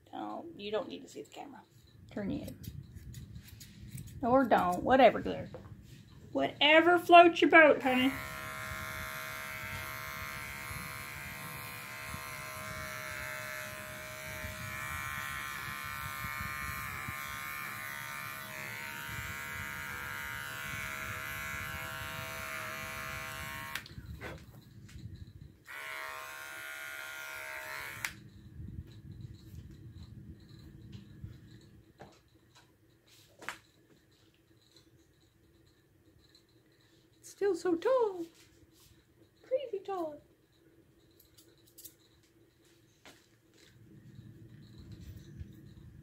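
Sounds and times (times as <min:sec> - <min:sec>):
electric clipper running: 0:07.7 - 0:24.0, 0:25.6 - 0:28.2.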